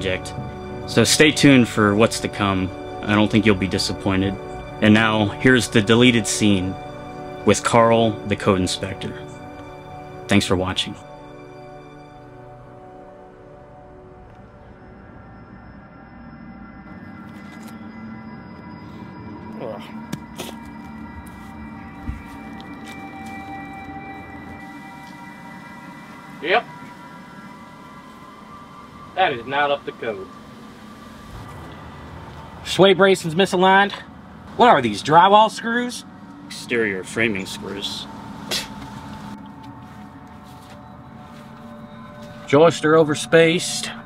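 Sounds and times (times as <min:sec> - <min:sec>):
music of long held tones: 0:00.0 - 0:44.0.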